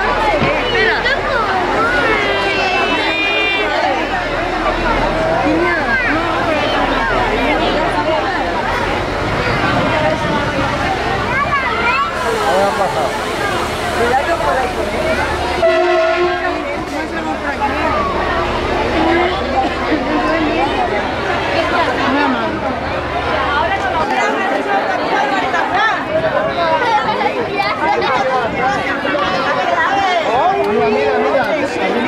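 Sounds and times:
crowd chattering: 0.0s - 32.0s
train horn blast: 15.5s - 16.8s.

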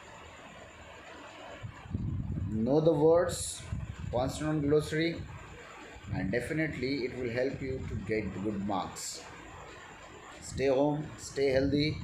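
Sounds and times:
faint room background noise: 0.0s - 12.0s.

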